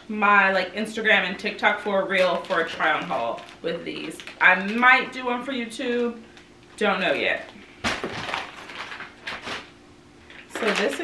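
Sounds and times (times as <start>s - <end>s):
plastic packaging rustling: 1.7s - 5.2s, 6.2s - 11.0s.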